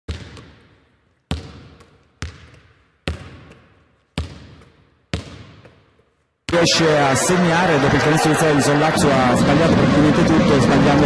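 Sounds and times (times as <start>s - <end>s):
basketball bouncing with echo: 0.1s - 6.6s.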